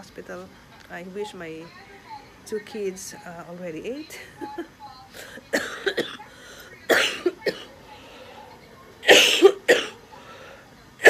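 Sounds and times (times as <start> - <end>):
woman coughing: 4.2 - 7.8, 9.0 - 10.0.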